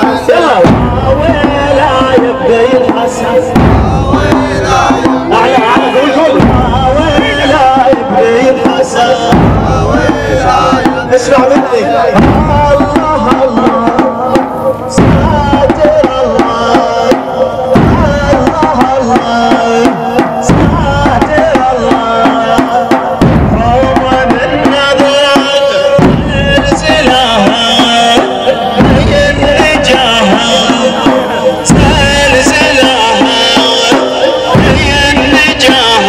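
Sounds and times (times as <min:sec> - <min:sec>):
man chanting a lament: 0:00.0 - 0:36.0
slow heavy percussive beat: 0:00.0 - 0:36.0.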